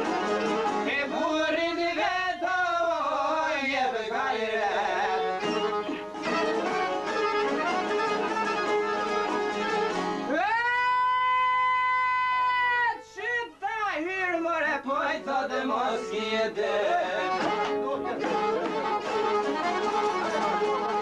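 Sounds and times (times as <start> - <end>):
plucked string instrument: 0.0 - 1.8, 4.5 - 10.3, 15.2 - 21.0
person singing folk song: 0.0 - 21.0.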